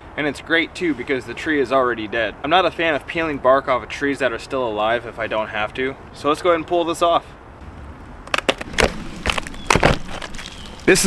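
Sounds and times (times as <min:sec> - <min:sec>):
bark tearing off tree trunk: 0:08.2 - 0:11.0.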